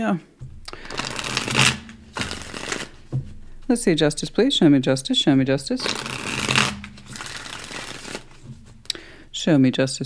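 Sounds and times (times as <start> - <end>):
cards being shuffled: 0.7 - 3.3, 5.6 - 8.8.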